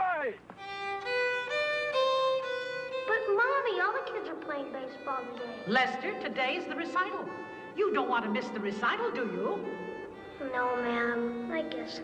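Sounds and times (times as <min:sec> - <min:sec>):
violin playing slow notes: 0:00.6 - 0:03.7, 0:04.4 - 0:12.0
person speaking: 0:03.2 - 0:11.5.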